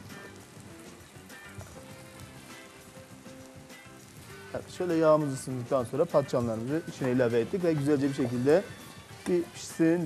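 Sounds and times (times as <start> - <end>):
oil sizzling in a frying pan: 0.0 - 10.0
quiet background music: 0.0 - 10.0.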